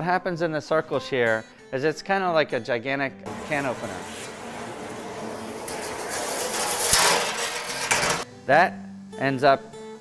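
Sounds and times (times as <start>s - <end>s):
metal cutter scraping sheet metal: 3.3s - 8.3s.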